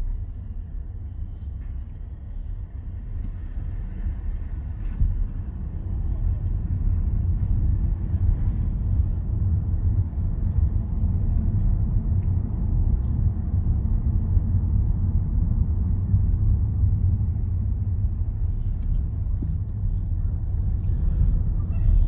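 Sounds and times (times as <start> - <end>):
car engine and road rumble: 0.0 - 22.0.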